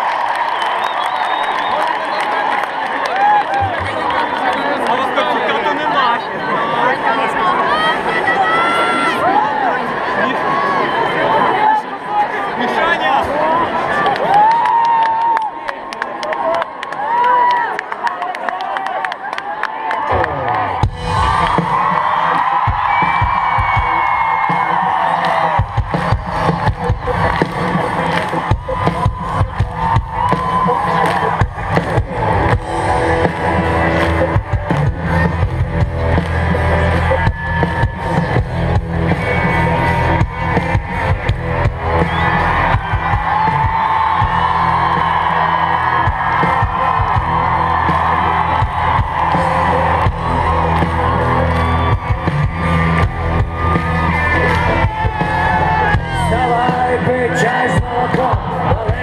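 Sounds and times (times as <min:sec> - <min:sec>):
crowd cheering and whooping: 0:00.0 - 0:12.2, 0:12.8 - 0:59.0
live rock band: 0:20.1 - 0:59.0
drum beat: 0:20.8 - 0:59.0
person singing: 0:54.8 - 0:59.0.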